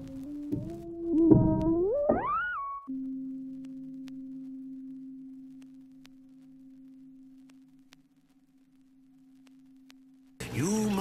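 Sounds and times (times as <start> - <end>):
low electronic tone: 0.0 - 10.4
faint clicks: 5.5 - 10.4.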